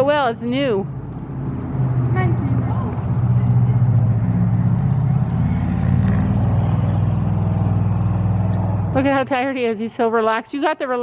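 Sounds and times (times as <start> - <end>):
loud steady low rumble: 0.0 - 10.9.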